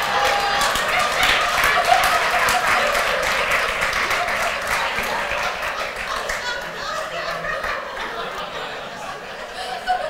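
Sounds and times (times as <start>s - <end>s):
audience applauding: 0.0s - 7.8s
audience laughing: 0.9s - 10.0s.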